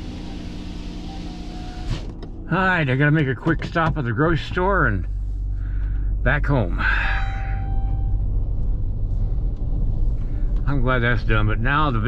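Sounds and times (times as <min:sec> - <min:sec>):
car engine rumble: 0:00.0 - 0:12.0
brief ringing tone: 0:07.0 - 0:08.3.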